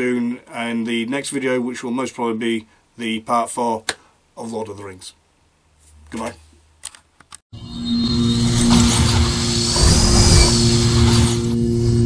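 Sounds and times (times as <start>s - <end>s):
music drone: 7.6s - 12.0s
rushing whoosh: 7.9s - 12.0s.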